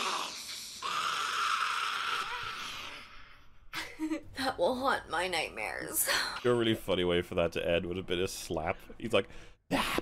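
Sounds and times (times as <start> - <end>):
creature screaming: 0.0 - 3.3.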